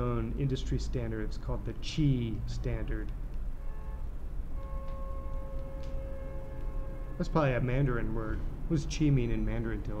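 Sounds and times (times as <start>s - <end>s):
background hum: 0.0s - 10.0s
faint whining tones: 0.0s - 10.0s.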